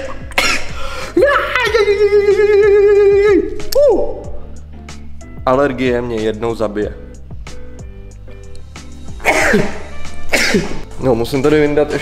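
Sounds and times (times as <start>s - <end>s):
man sneezing: 0.0s - 1.2s, 9.2s - 10.9s
background music: 0.0s - 12.0s.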